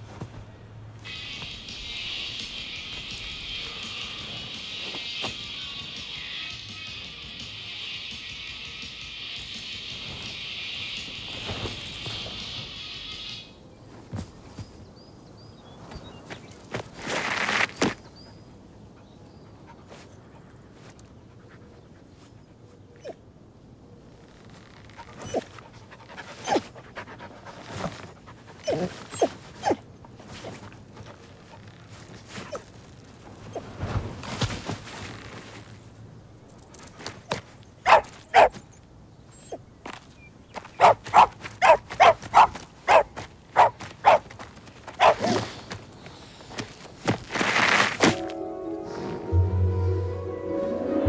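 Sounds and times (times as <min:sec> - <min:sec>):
dog yelping: 0:25.0 - 0:25.6, 0:26.2 - 0:26.8, 0:28.5 - 0:29.8, 0:37.8 - 0:39.6, 0:40.7 - 0:44.3, 0:45.0 - 0:45.4
dog panting: 0:25.1 - 0:29.3.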